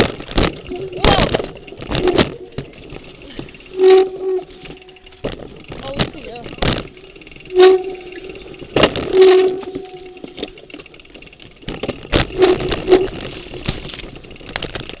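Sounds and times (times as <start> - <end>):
bike knocking and rattling: 0.0 - 15.0
brakes squealing: 0.0 - 15.0.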